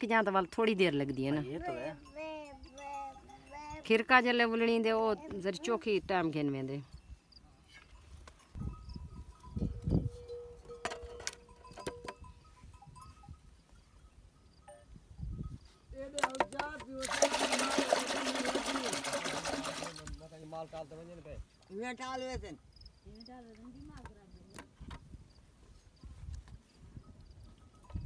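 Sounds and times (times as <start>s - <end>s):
hand sloshing through buttermilk: 17.0s - 20.1s
liquid splashing: 17.0s - 20.2s.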